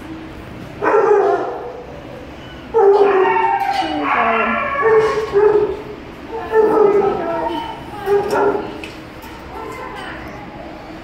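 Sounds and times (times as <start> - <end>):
young dog whining howl: 1.2 - 5.8.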